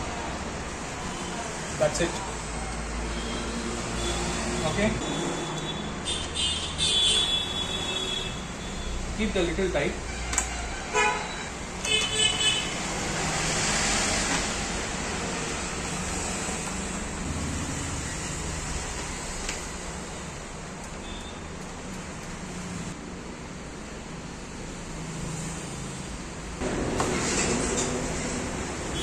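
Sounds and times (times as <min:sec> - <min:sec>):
road traffic noise: 0:00.0 - 0:29.0.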